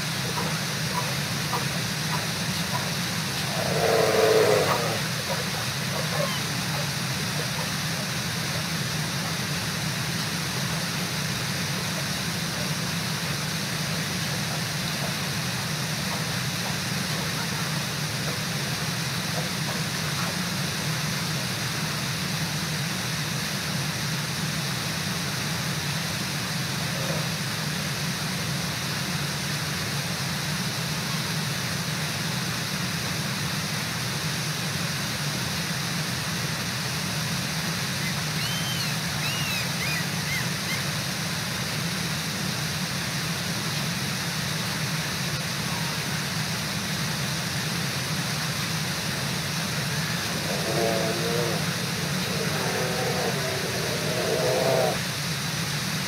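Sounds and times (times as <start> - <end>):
river water rushing: 0.0 - 29.1, 35.4 - 56.0.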